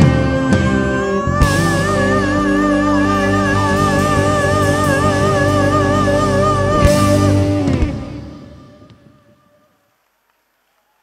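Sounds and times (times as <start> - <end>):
live band music: 0.0 - 9.8.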